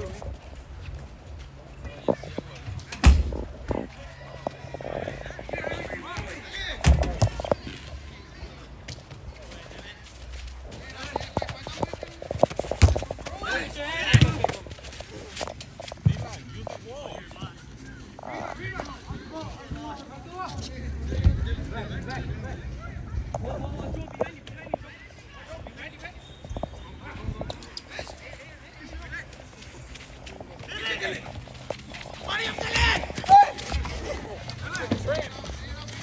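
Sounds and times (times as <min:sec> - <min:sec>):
football kick thuds: 0:12.3 - 0:13.3, 0:14.0 - 0:14.6
players shouting: 0:32.2 - 0:36.0.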